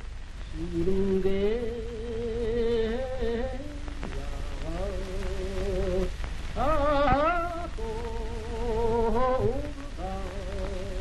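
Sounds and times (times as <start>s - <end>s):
film soundtrack hiss: 0.0s - 11.0s
low hum: 0.0s - 11.0s
person singing long notes: 0.5s - 11.0s.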